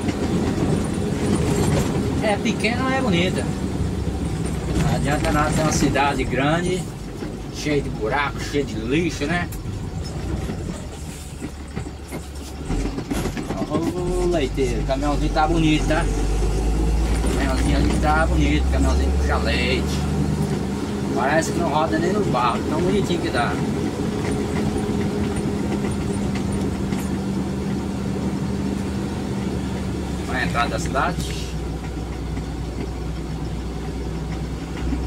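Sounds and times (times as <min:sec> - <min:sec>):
vehicle engine and road rumble: 0:00.0 - 0:35.0.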